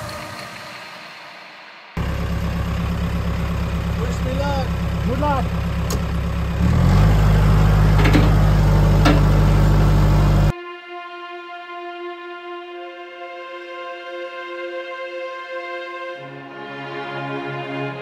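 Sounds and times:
tractor engine running: 2.0 - 10.5.

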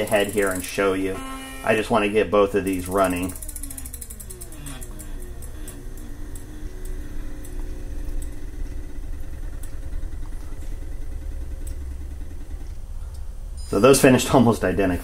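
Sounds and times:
small motors humming: 0.0 - 13.0.

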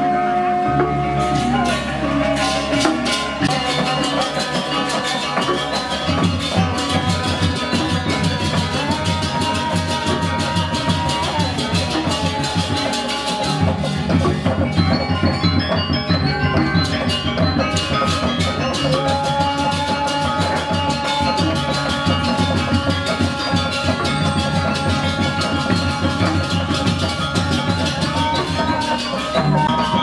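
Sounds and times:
ringing metallophones: 0.0 - 30.0.

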